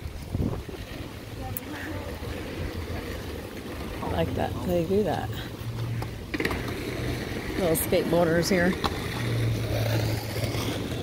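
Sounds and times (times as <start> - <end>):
wind rumbling on microphone: 0.0 - 6.3
faint street background: 0.0 - 11.0.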